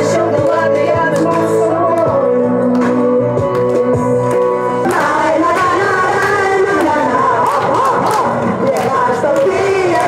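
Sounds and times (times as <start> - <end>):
women singing pop song: 0.0 - 2.6, 4.8 - 10.0
backing music over pa: 0.0 - 10.0.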